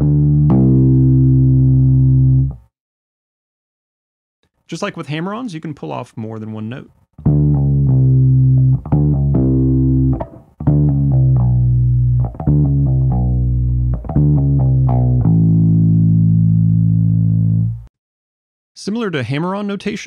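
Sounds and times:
electric bass guitar pull-offs: 7.2 - 17.9.

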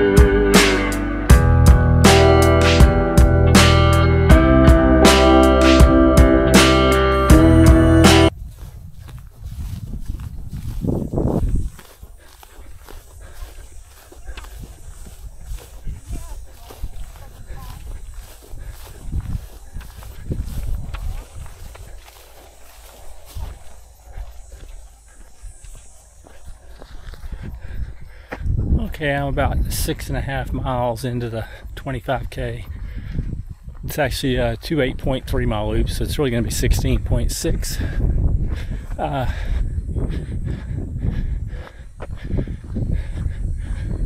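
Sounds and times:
acoustic guitar music: 0.0 - 8.3
low microphone rumble: 0.0 - 11.4
footsteps on dirt trail: 0.0 - 44.0.

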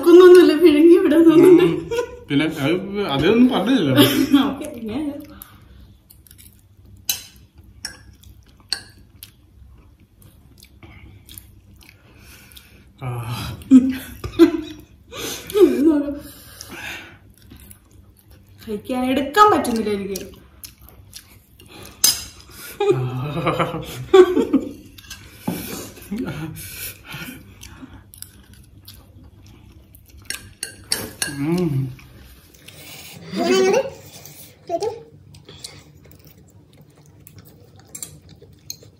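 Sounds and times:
chewing noodles: 26.9 - 33.2, 34.0 - 38.9.

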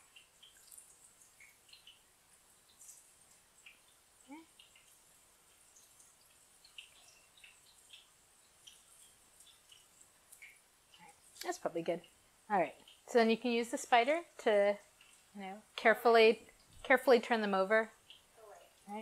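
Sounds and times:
eggplant deep-frying in oil: 0.0 - 19.0.

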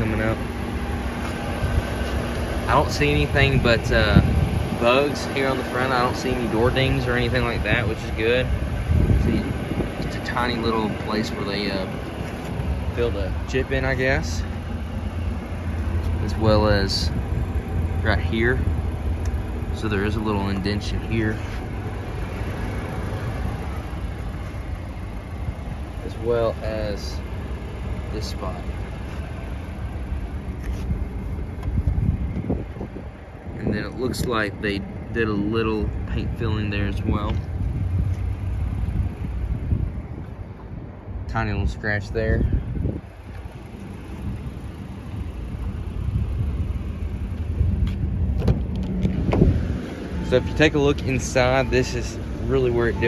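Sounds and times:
low outdoor rumble: 0.0 - 53.0
wind buffeting microphone: 2.6 - 20.1, 30.4 - 35.1, 35.8 - 52.4.

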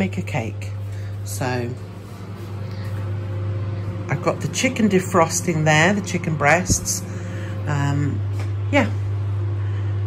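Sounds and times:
microwave oven hum: 0.0 - 10.0.

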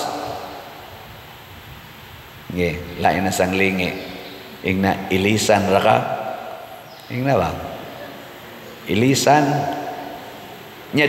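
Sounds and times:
voice echo: 0.0 - 1.0, 2.5 - 11.0
low room noise: 0.0 - 11.0.

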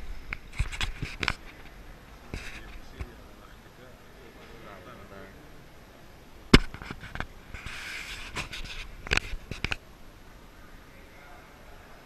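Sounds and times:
sharp clicks and knocks: 6.5 - 7.3.

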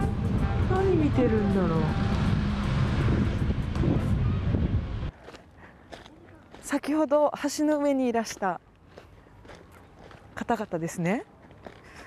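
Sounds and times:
wind buffeting microphone: 0.0 - 5.2.

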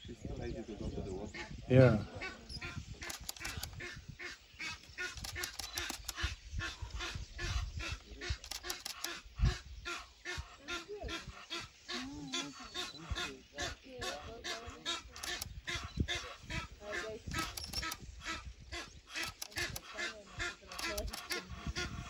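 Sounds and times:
ducks calling: 0.8 - 22.0.

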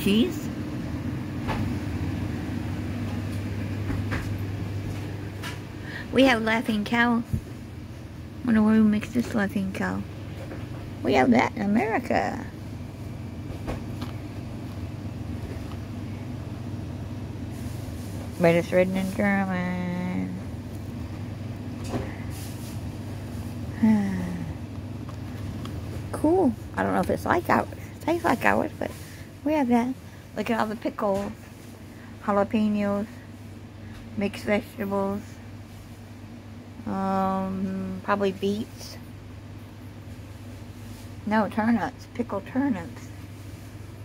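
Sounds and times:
refrigerated display case humming: 0.0 - 44.0.

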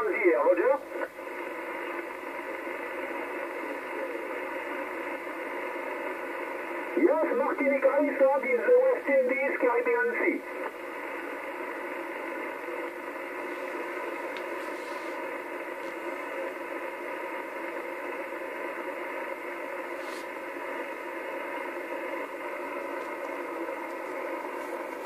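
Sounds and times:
radio static hiss: 0.0 - 25.0.

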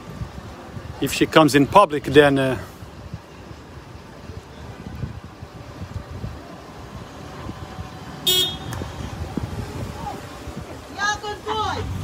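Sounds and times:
street traffic rumble: 0.0 - 12.0
car horn toot: 8.2 - 8.9.

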